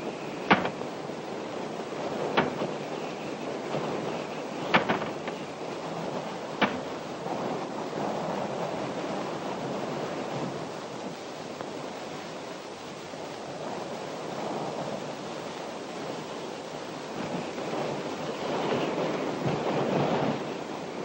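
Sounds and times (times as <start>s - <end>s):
rushing wind: 0.0s - 21.0s.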